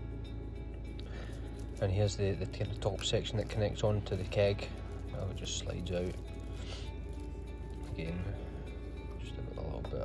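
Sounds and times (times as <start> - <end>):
quiet background music: 0.0 - 10.0
plastic wrapping and cardboard rustle: 1.3 - 8.4.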